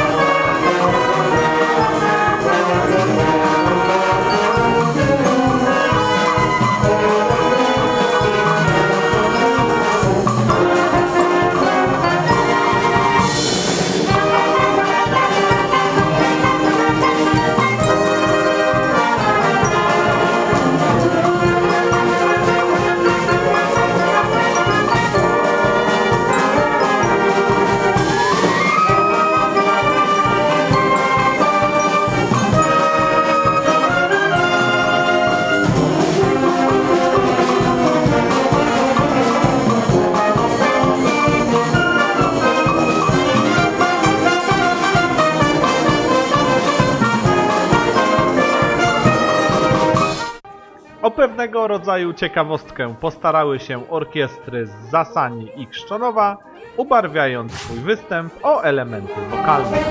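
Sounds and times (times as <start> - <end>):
wind band playing: 0.0 - 59.9.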